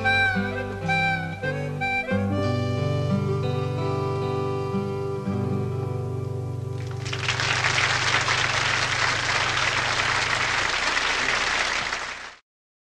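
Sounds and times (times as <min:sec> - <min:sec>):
acoustic guitar chord ringing: 0:00.0 - 0:07.0
audience applause: 0:06.8 - 0:12.4.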